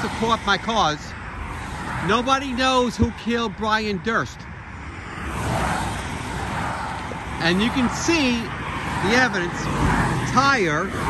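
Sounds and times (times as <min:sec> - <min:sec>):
tyre and road noise: 0:00.0 - 0:11.0.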